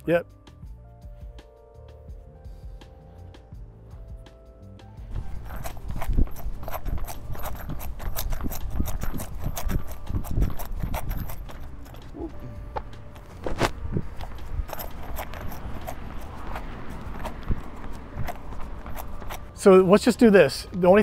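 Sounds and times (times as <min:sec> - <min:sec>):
running footsteps on asphalt: 0:05.0 - 0:21.0.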